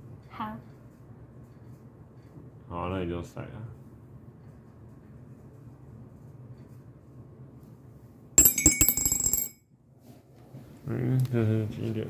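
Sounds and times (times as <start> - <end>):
die rattling in ceramic mug: 8.4 - 9.5.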